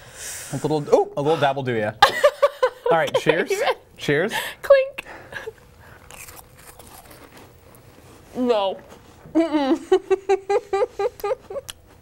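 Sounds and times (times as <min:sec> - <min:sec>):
crackers crunching: 0:05.8 - 0:08.1.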